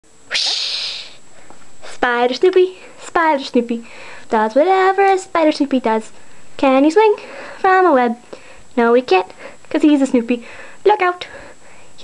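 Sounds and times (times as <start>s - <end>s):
person hissing breathily: 0.3s - 1.2s
quick breath in: 0.3s - 1.2s, 3.9s - 4.3s.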